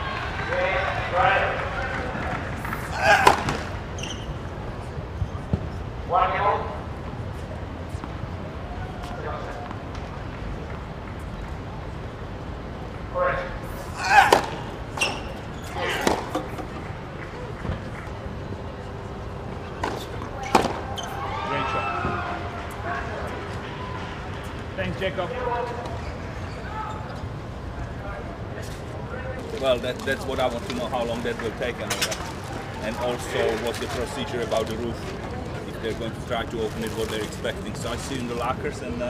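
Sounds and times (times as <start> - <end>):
racket striking ball: 3.1 - 3.7, 14.1 - 16.8, 19.8 - 20.9
faint shoe squeaks: 3.1 - 5.9, 14.0 - 16.8, 19.5 - 22.2, 25.5 - 27.4
tennis ball struck with racket: 14.2 - 15.2, 19.8 - 20.9.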